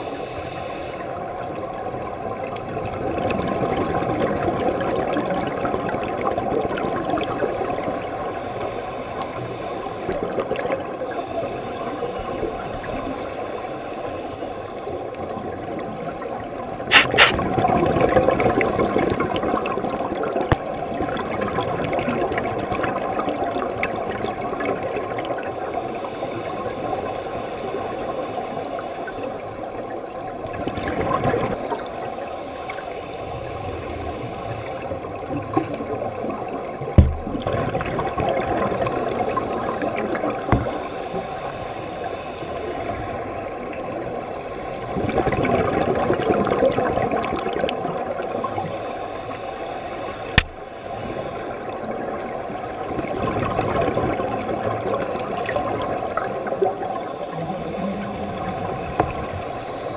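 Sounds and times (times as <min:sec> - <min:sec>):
underwater bubbling and hiss: 0:00.0 - 0:59.9
sharp underwater knocks: 0:37.0 - 0:37.4.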